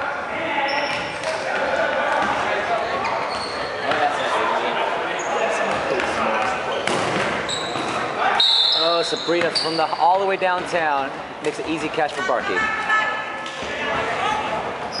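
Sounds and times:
players shouting and chattering: 0:00.0 - 0:15.0
dodgeballs bouncing on gym floor: 0:00.3 - 0:03.1, 0:05.7 - 0:08.1
sneaker squeaks on wooden floor: 0:00.6 - 0:01.2, 0:02.2 - 0:04.2, 0:05.2 - 0:10.2.

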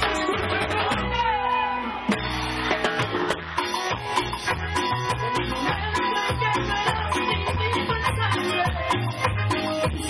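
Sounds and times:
live cumbia band music: 0:00.0 - 0:10.0.

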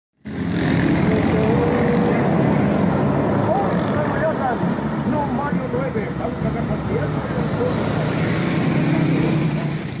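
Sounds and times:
motorcycle engines droning: 0:00.2 - 0:10.0.

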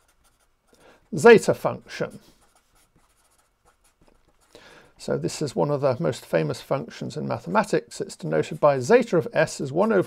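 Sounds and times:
marker pen writing on paper: 0:00.0 - 0:04.7, 0:07.4 - 0:10.0.

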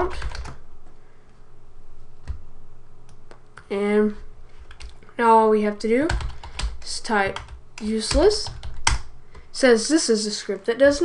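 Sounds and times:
keyboard typing: 0:00.0 - 0:00.6, 0:06.0 - 0:09.4.

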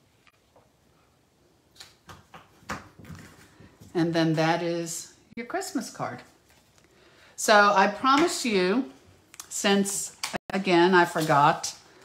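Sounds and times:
paper rustling and tapping: 0:01.8 - 0:03.9.

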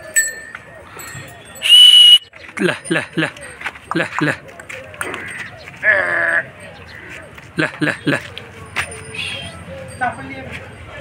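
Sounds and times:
bleat-like animal call: 0:05.8 - 0:06.6.

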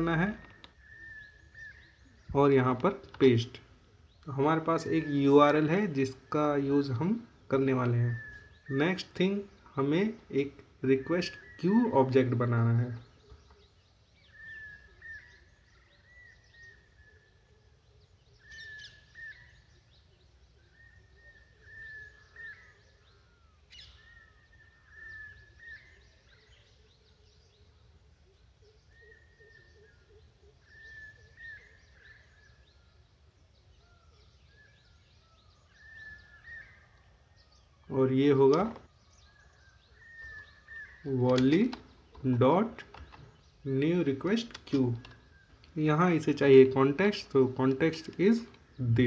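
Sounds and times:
birds chirping: 0:00.0 - 0:49.0
sharp clicks: 0:38.5 - 0:38.9, 0:41.2 - 0:43.4, 0:44.2 - 0:45.8.

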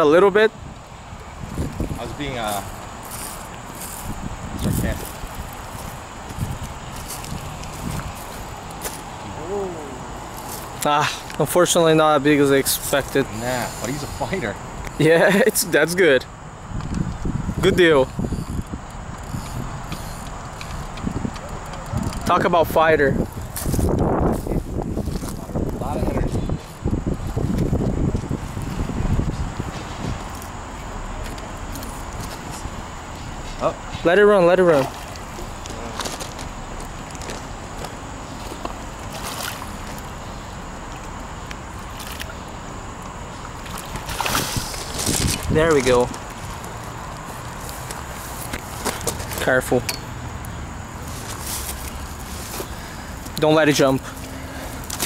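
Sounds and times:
steady background hiss: 0:00.0 - 0:55.0
fishing reel clicking: 0:18.0 - 0:22.4
water sloshing and splashing: 0:34.7 - 0:49.3.

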